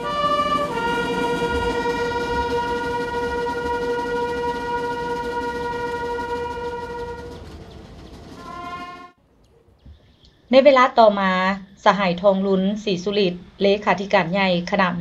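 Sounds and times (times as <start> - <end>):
brass call notes: 0.0 - 9.2.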